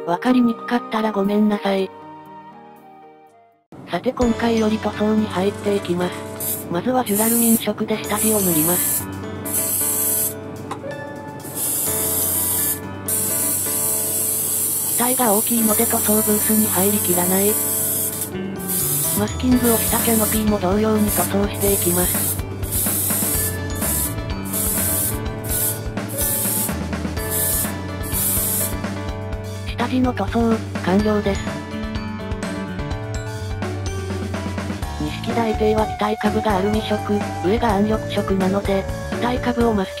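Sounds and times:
airbrush spraying hiss: 6.3 - 10.4, 11.6 - 28.8.

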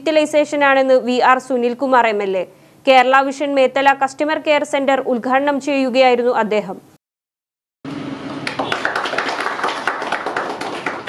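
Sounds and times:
group of people clapping: 8.3 - 11.0.

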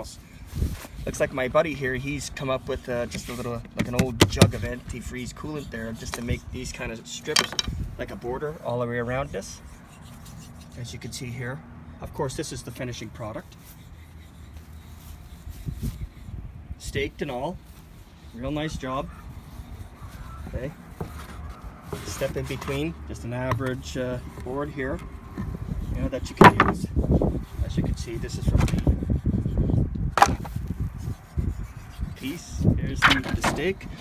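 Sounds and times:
low wind rumble: 0.0 - 10.0, 13.8 - 34.0
plastic jug handling rumble: 2.7 - 5.0, 20.4 - 26.9, 30.1 - 30.7
microphone handling noise: 28.4 - 31.0.

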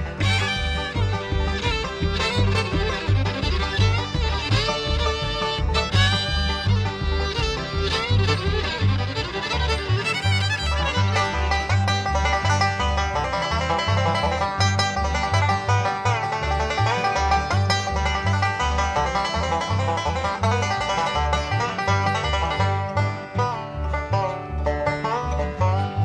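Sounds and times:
bluegrass band playing: 0.0 - 26.0
fiddle lead: 0.0 - 26.0
upright bass: 0.0 - 26.0.

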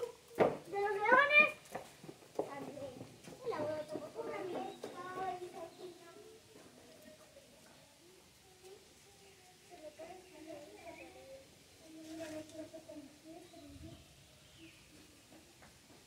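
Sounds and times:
voices chattering: 0.0 - 15.6
child exclaiming: 0.8 - 1.6.

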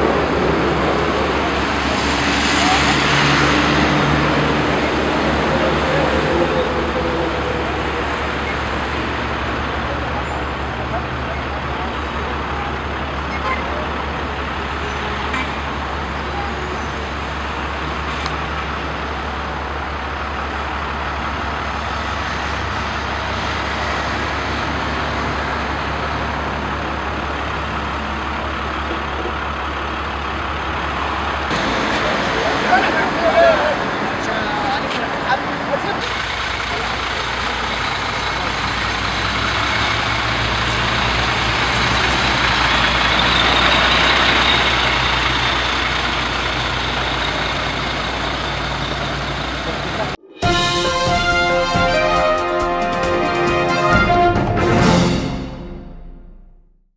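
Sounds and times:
road traffic noise: 0.0 - 56.6.

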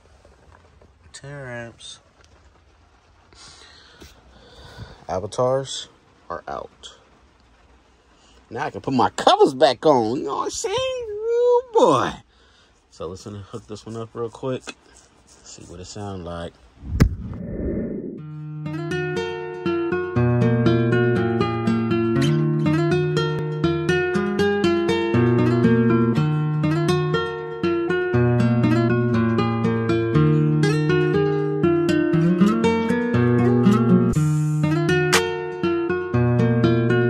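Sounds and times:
rushing whoosh: 16.8 - 18.3
plucked guitar music: 18.1 - 37.0.

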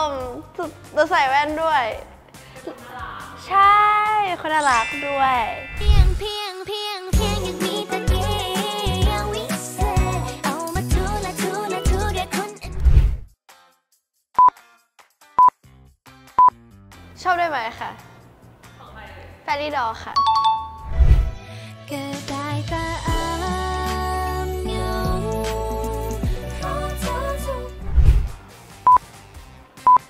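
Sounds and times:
faint background music: 0.0 - 6.4, 17.1 - 30.0
short high beeps: 4.6 - 6.3.

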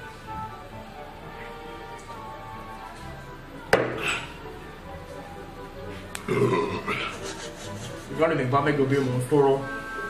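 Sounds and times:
man burping: 3.9 - 4.4, 6.2 - 7.2.

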